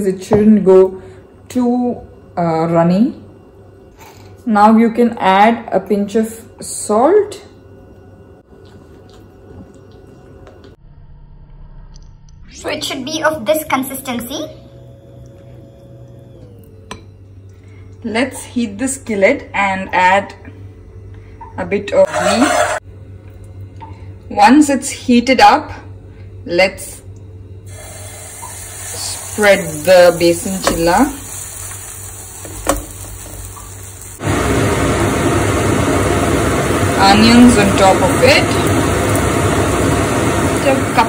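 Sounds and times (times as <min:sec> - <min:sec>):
faint steady hum: 0:00.0 - 0:41.0
ladle scraping skillet: 0:22.0 - 0:22.8
batter hissing on skillet: 0:27.7 - 0:34.6.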